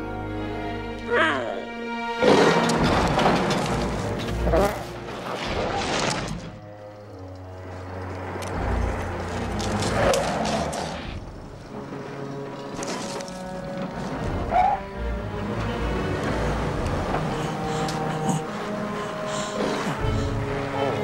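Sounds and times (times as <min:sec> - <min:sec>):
movie music: 0:00.0 - 0:21.0.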